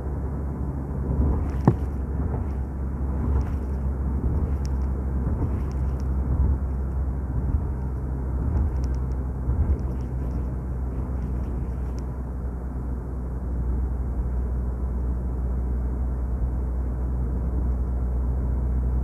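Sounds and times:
vehicle engine and tyres rumbling: 0:00.0 - 0:19.0.

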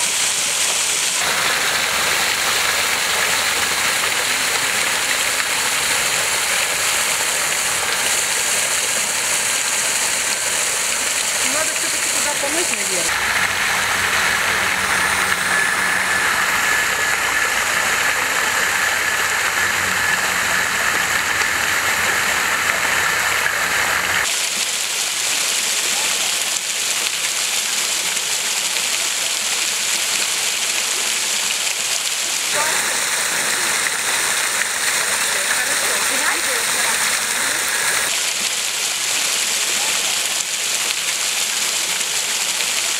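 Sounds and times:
fountain water splashing into basin: 0:00.0 - 0:42.9.

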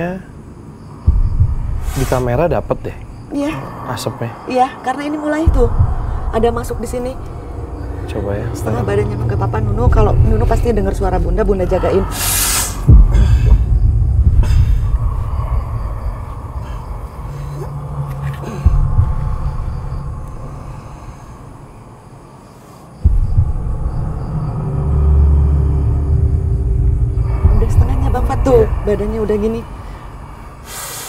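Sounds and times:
deep low rumbling drone: 0:00.3 - 0:04.1, 0:05.4 - 0:22.4, 0:23.0 - 0:31.0
low tone: 0:05.4 - 0:12.2, 0:12.8 - 0:21.8, 0:23.0 - 0:30.7.

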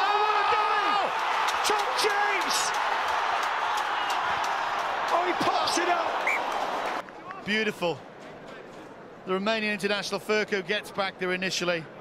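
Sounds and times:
stadium crowd cheering: 0:00.0 - 0:07.7.

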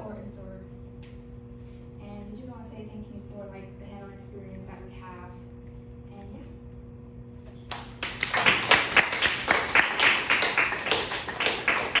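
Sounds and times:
audience applauding: 0:07.7 - 0:12.0.

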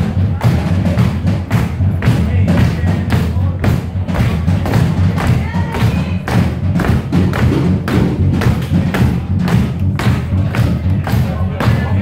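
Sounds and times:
drum hits: 0:00.0 - 0:12.0.

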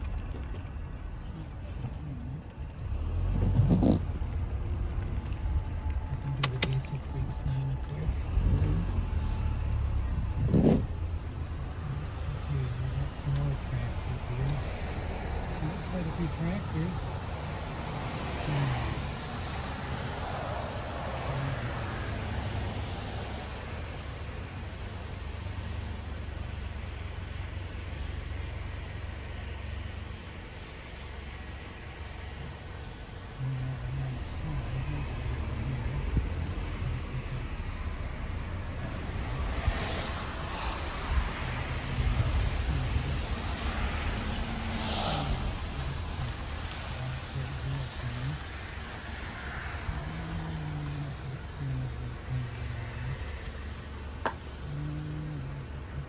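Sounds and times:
vehicle low rumble: 0:00.0 - 0:56.0
vehicle rushing past: 0:02.8 - 0:24.1, 0:33.6 - 0:56.0
faint low voices: 0:33.3 - 0:44.5, 0:45.2 - 0:56.0.

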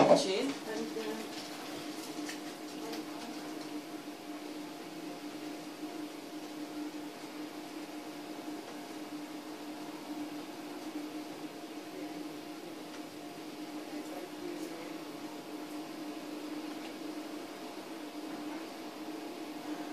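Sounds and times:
low electrical hum: 0:00.0 - 0:19.9.

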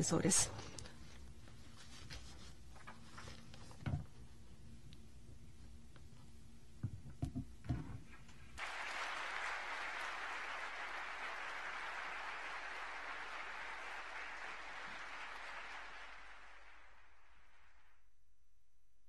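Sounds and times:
large audience applauding: 0:08.6 - 0:18.0.

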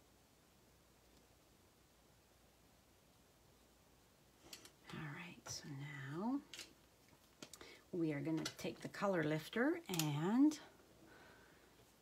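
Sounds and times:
woman speaking softly: 0:04.9 - 0:06.5, 0:08.0 - 0:10.7.

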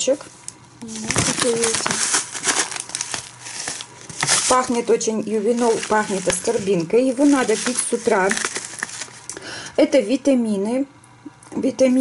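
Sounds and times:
plastic pouch crinkling: 0:00.8 - 0:09.4.

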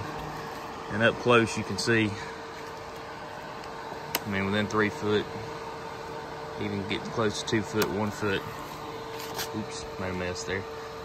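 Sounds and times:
fan blowing air with hum: 0:00.0 - 0:11.0.

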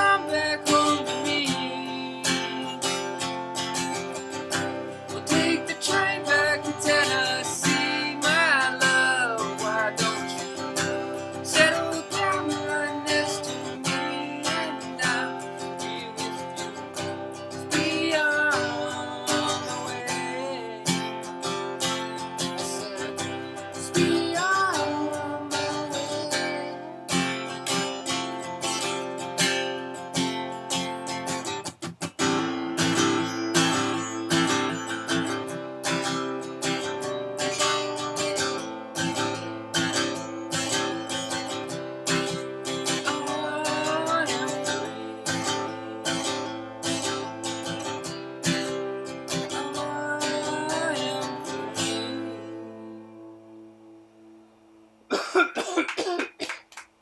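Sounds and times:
man singing: 0:00.0 - 0:03.5, 0:04.5 - 0:28.1, 0:40.0 - 0:47.8, 0:48.5 - 0:53.2
acoustic guitar strumming: 0:00.0 - 0:56.4.

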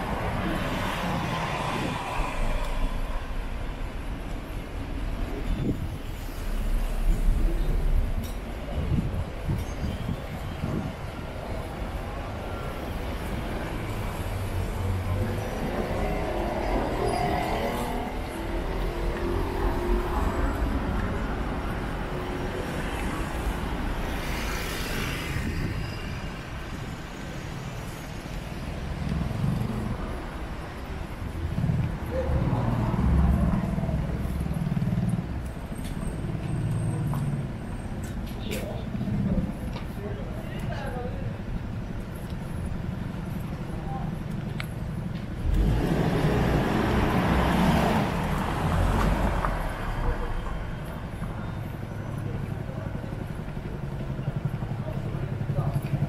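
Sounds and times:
cars passing: 0:00.0 - 0:56.0.

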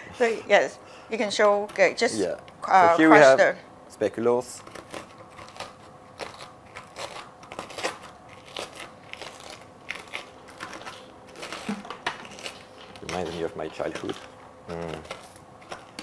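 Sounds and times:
biscuits crunching in a bowl: 0:04.4 - 0:16.0.

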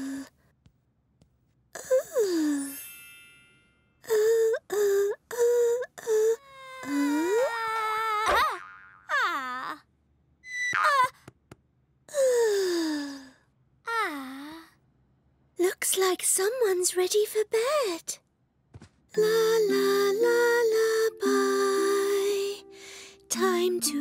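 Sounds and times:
cartoon character singing: 0:19.2 - 0:24.0.

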